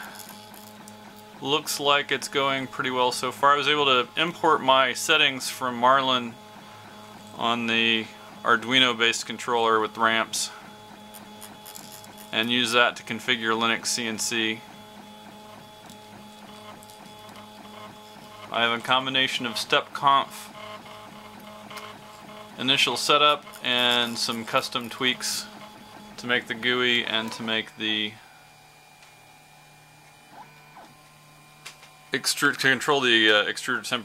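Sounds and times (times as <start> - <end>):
printer stepper motors whining: 0.0 - 34.0.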